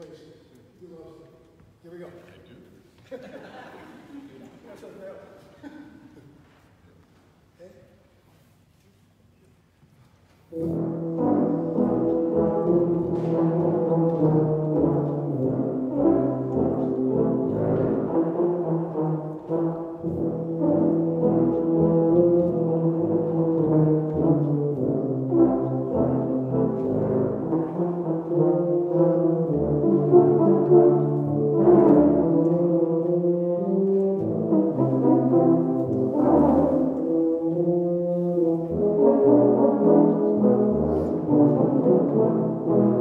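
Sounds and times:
low brass ensemble playing: 0:10.4 - 0:43.0.

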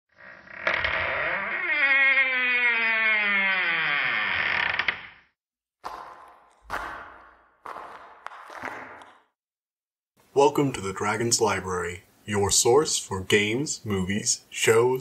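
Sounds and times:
creaking groan sliding down: 0:00.1 - 0:05.2.

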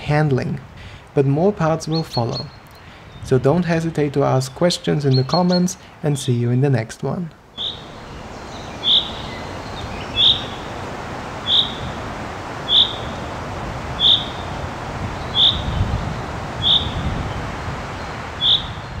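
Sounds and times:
steady background hiss: 0:00.0 - 0:19.0
chaffinch calling: 0:04.4 - 0:06.3, 0:07.5 - 0:19.0.

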